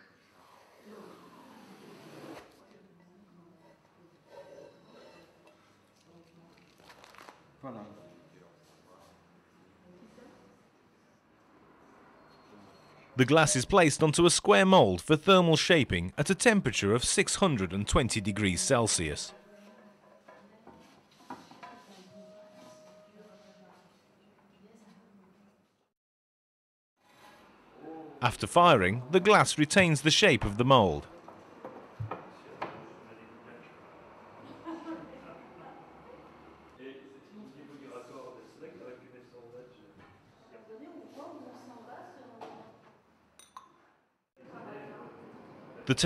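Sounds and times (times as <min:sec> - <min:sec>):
man's voice: 0:13.2 - 0:19.3, 0:28.2 - 0:31.1.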